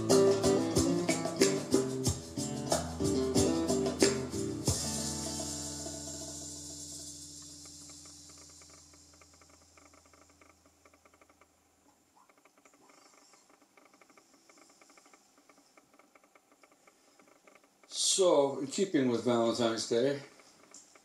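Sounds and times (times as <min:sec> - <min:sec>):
acoustic guitar chord ringing: 0:00.0 - 0:08.3
low hum: 0:04.7 - 0:17.7
faint rapid crackling clicks: 0:07.3 - 0:21.0.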